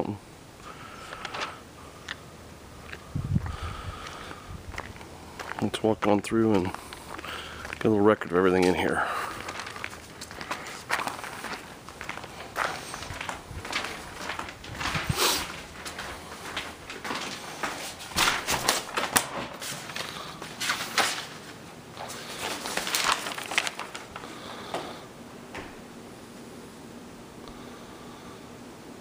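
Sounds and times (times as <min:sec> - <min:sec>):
footsteps: 0:02.8 - 0:25.8.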